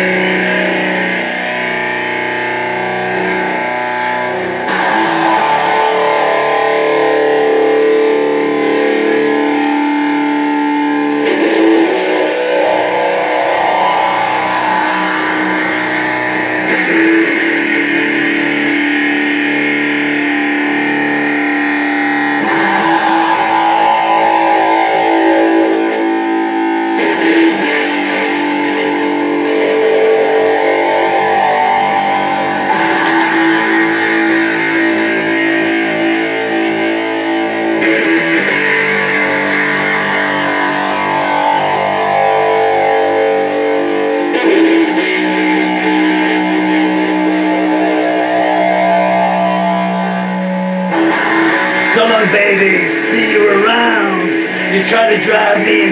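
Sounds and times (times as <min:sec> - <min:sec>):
electric guitar strummed chords: 0:00.0 - 0:55.9.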